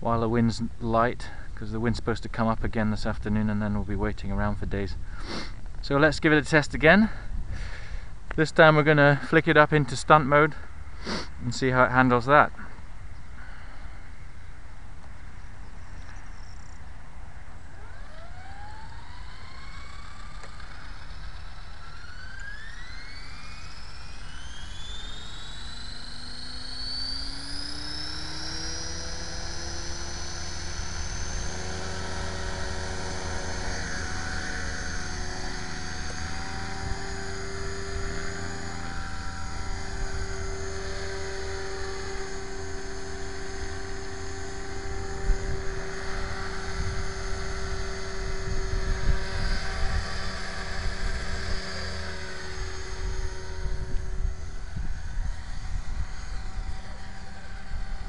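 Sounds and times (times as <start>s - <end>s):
rc helicopter rotor whine: 0.0s - 58.0s
low rumbling: 22.8s - 58.0s.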